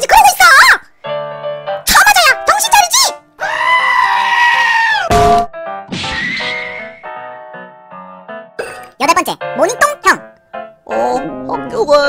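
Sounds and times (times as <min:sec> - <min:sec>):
soft background music: 0:01.0 - 0:12.0
long scream: 0:03.4 - 0:05.1.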